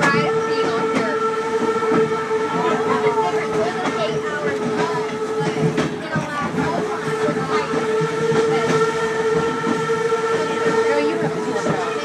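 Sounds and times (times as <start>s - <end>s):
train droning tone: 0.0s - 12.0s
train rumbling and rattling: 0.0s - 12.0s.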